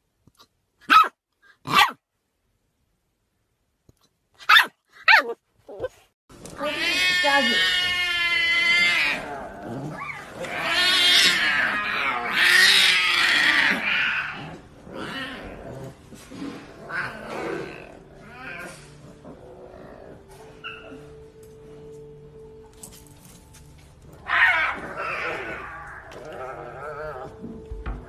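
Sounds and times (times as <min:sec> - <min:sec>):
tiger cubs crying: 0:06.4 - 0:16.0, 0:16.6 - 0:21.2, 0:24.1 - 0:27.4.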